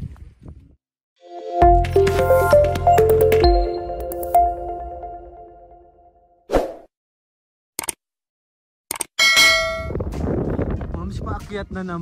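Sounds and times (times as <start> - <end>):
notification bell ding: 1.5 - 5.8.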